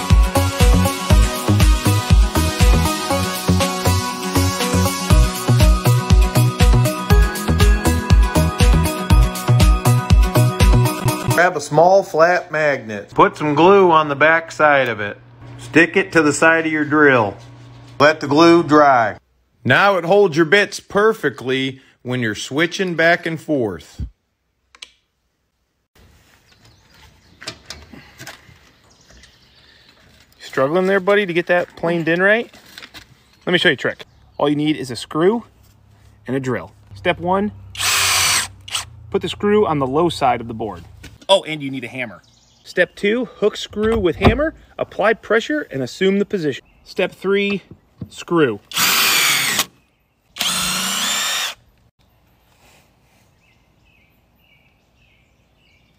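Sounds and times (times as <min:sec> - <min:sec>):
faint outdoor background: 0:18.0 - 0:55.9
cordless driver driving screw into wood: 0:37.8 - 0:38.9, 0:48.7 - 0:49.8, 0:50.4 - 0:51.6.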